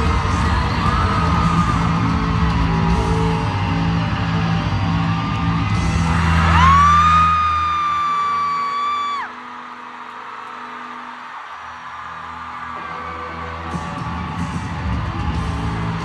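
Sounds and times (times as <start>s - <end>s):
crowd cheering: 0.0s - 16.0s
loud music with heavy bass: 0.0s - 16.0s.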